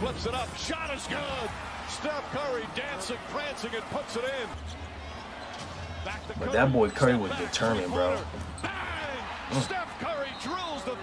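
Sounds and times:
arena crowd rumble: 0:00.0 - 0:11.0.

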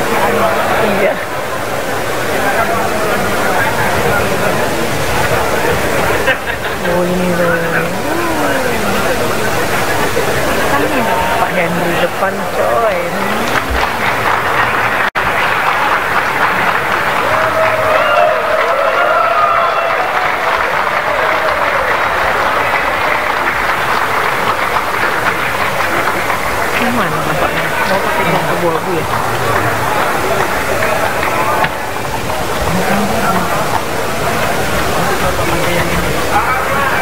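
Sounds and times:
crowd applauding: 0:00.0 - 0:37.0
voices talking and calling out: 0:00.0 - 0:37.0.

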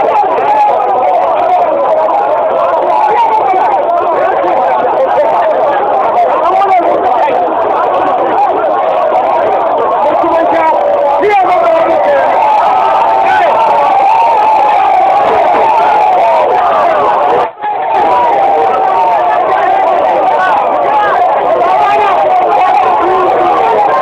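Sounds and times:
crowd shouting: 0:00.0 - 0:24.0.

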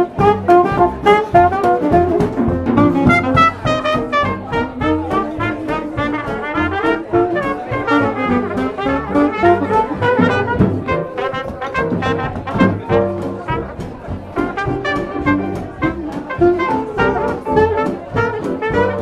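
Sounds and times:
jazz rhythm section swing beat: 0:00.0 - 0:19.0
trumpet melody: 0:00.0 - 0:19.0.

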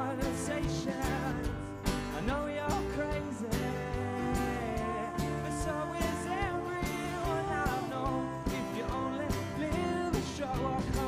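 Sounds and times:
drum kit beat: 0:00.0 - 0:11.0
guitar: 0:00.0 - 0:11.0
woman singing: 0:03.6 - 0:11.0.

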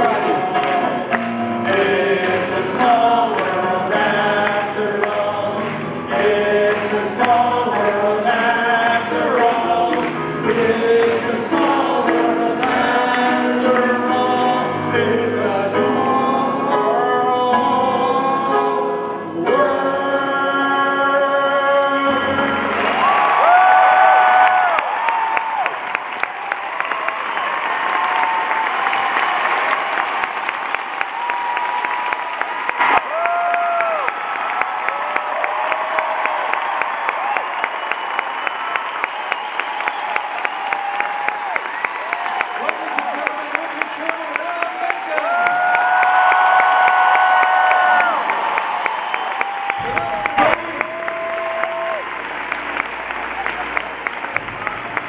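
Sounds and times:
audience applause: 0:00.0 - 0:14.6, 0:22.2 - 0:55.0.

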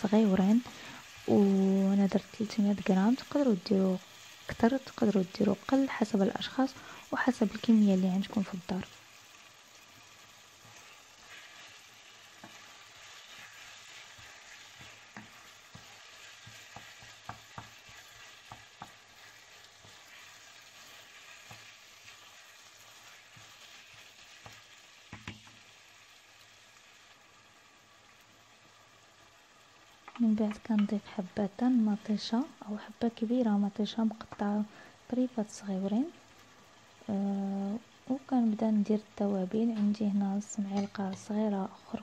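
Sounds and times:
food sizzling in a frying pan: 0:00.0 - 0:42.0
wooden spoon tapping and scraping pan: 0:12.3 - 0:12.7, 0:14.1 - 0:20.2, 0:21.3 - 0:21.8, 0:23.3 - 0:25.6, 0:30.0 - 0:31.0, 0:40.6 - 0:42.0.

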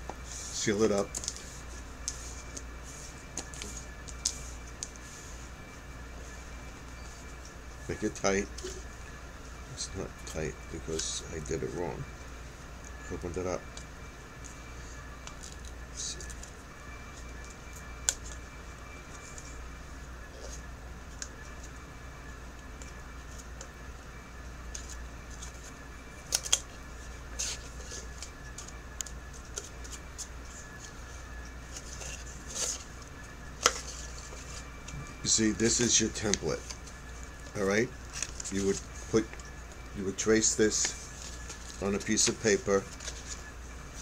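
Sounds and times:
low steady hum: 0:00.0 - 0:44.0
paper rustling: 0:31.6 - 0:32.9, 0:33.6 - 0:34.7, 0:38.0 - 0:39.5, 0:40.4 - 0:44.0.

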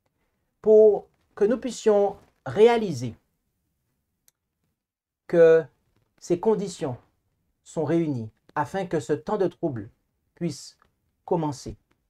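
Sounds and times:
man speaking: 0:00.6 - 0:03.2, 0:05.3 - 0:11.8.

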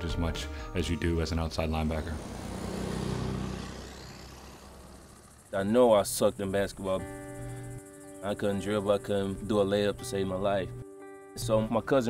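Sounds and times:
truck driving past: 0:01.2 - 0:08.1.

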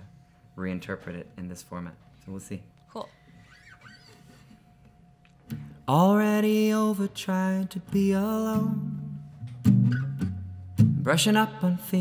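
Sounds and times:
faint steady hum: 0:00.0 - 0:12.0
soft brief squeaks: 0:03.4 - 0:04.6.

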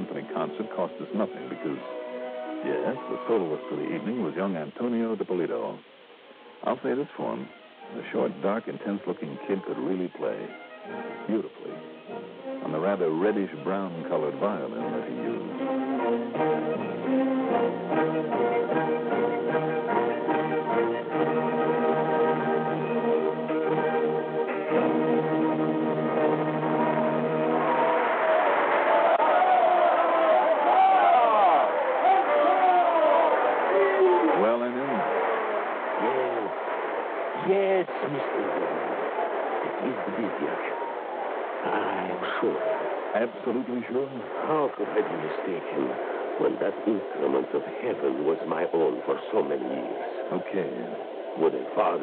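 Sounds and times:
held brass and orchestra chord: 0:00.0 - 0:04.3, 0:14.5 - 0:28.1.

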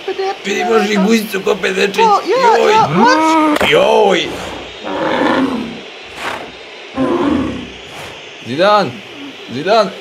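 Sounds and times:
breathy hiss: 0:03.9 - 0:09.5
rough roar-like cry: 0:04.2 - 0:07.9.

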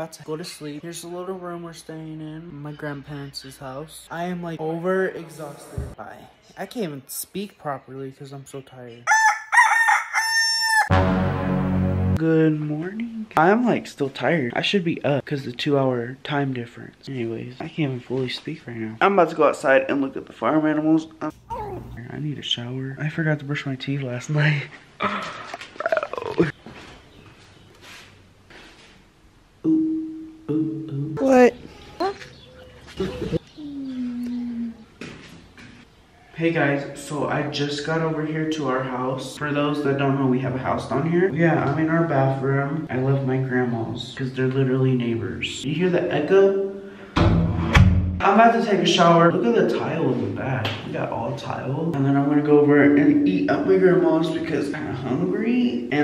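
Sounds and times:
rooster crowing: 0:09.1 - 0:10.9.

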